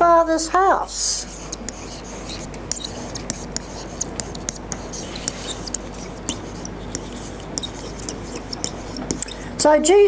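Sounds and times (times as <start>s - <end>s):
stylus ticking and scratching: 0.9s - 9.7s.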